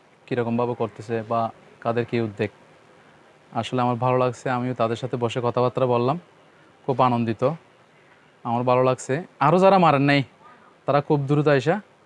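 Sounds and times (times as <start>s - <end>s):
man talking: 0.2s - 2.6s, 3.5s - 7.7s, 8.4s - 11.9s.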